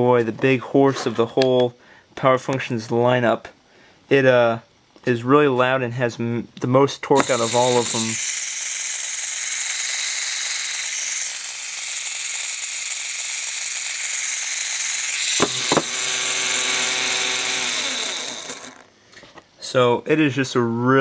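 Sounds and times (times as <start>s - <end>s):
electric motor whirring: 7.2s - 18.9s.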